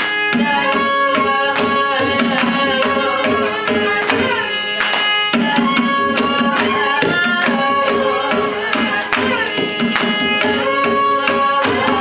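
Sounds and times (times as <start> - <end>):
mridangam drum strokes: 0.0 - 12.0
violin gliding melody: 0.0 - 12.0.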